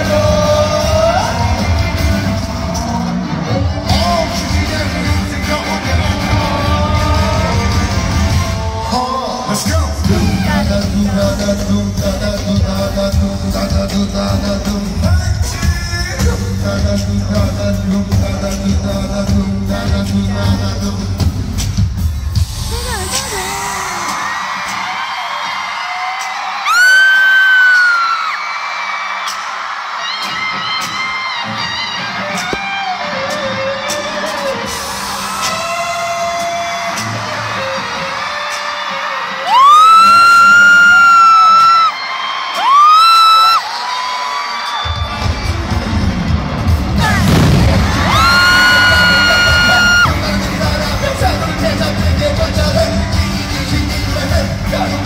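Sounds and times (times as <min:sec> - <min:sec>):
crowd screaming and cheering: 0:00.0 - 0:55.0
live music: 0:00.0 - 0:55.0
high-pitched held screams: 0:39.3 - 0:45.0, 0:47.0 - 0:50.2.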